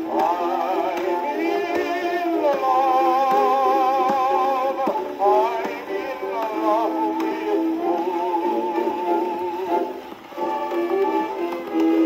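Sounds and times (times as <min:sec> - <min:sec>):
old phonograph record singing: 0:00.0 - 0:12.0.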